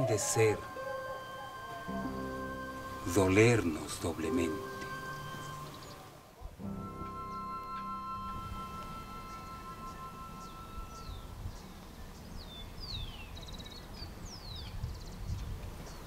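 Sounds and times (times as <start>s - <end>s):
held musical chord: 0.0s - 12.8s
small birds chirping and trilling: 9.2s - 16.0s.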